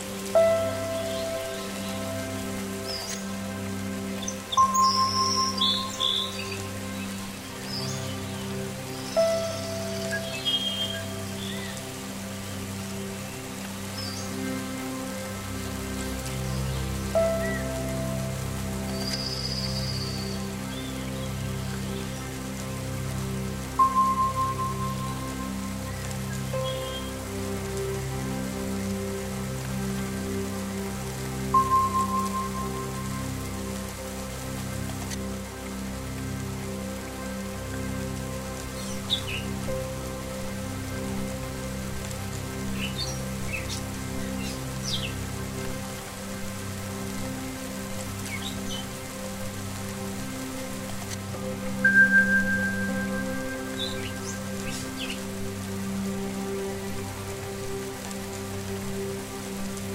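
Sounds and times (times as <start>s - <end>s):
ambient meditation drone: 0.0s - 59.9s
falling rain hiss: 0.0s - 59.9s.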